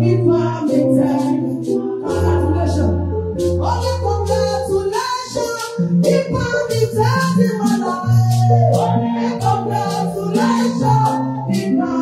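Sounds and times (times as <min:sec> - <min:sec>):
bass line: 0:00.0 - 0:04.9
percussion: 0:00.0 - 0:12.0
women singing gospel chorus: 0:00.0 - 0:12.0.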